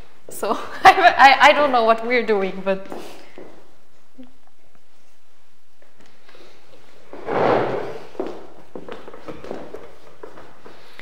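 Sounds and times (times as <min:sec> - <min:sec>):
footsteps on wooden floor: 0:02.4 - 0:03.7, 0:06.7 - 0:11.0
scrape or thump: 0:07.2 - 0:08.1.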